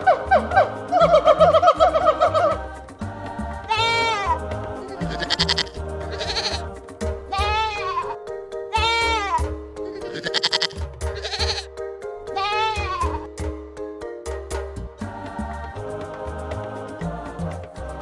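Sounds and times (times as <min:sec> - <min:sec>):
background music: 0:00.0 - 0:18.0
goats bleating: 0:03.7 - 0:11.7, 0:12.3 - 0:13.3.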